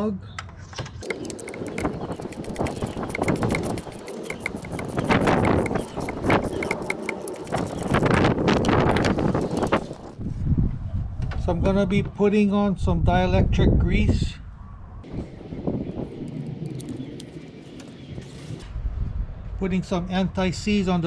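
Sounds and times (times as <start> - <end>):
rapid ratchet clicks: 1.0 - 10.0.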